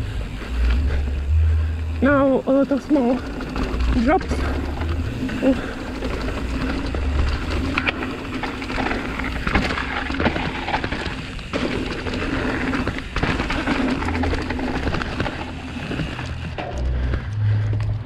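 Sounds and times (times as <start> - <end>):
bike rattling and knocking: 0.0 - 18.0
bike tyres on dirt: 0.0 - 18.0.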